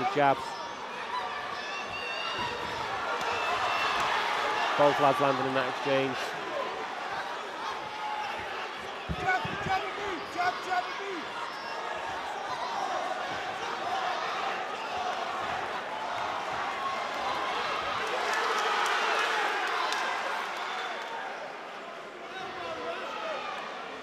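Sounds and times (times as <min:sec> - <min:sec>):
crowd shouting: 0:00.0 - 0:24.0.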